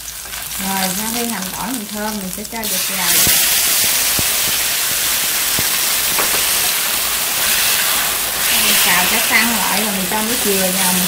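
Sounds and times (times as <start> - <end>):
meat sizzling in hot oil: 0.0 - 11.0
utensil tapping pan: 5.5 - 6.9.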